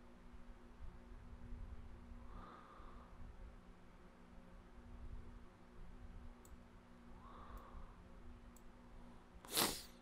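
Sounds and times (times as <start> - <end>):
quiet room hum: 0.0 - 10.0.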